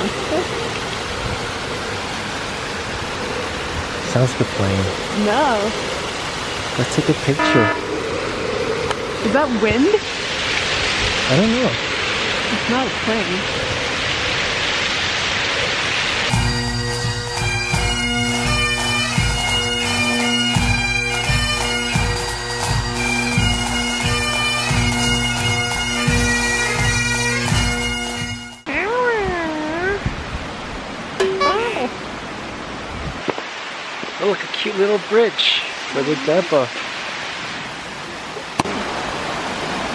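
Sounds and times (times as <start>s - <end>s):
waterfall rushing: 0.0s - 28.1s, 28.9s - 39.9s
wavering gliding tones: 7.0s - 10.3s, 31.2s - 32.2s
bagpipe music: 7.4s - 7.9s, 16.3s - 28.7s, 31.2s - 32.1s.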